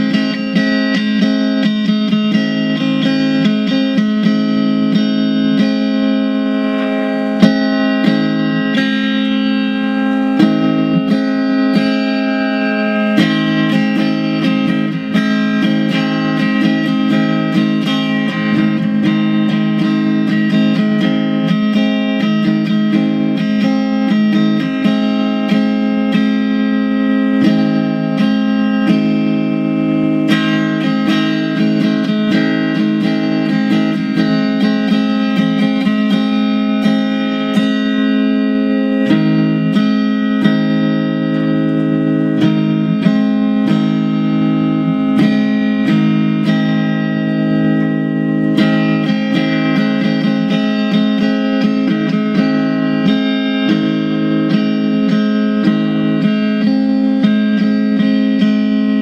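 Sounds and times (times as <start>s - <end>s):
electric guitar picked chords: 0.0s - 59.0s.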